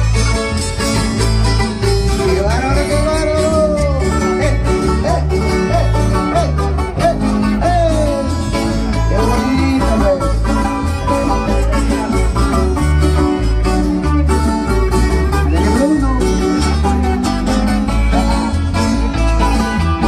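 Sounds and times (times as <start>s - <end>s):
live band playing dance music: 0.0s - 20.0s.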